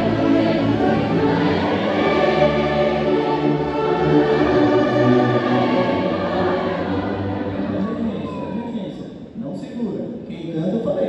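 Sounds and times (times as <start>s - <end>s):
voices singing along: 0.0s - 8.4s
orchestra playing a slow hymn: 0.0s - 8.7s.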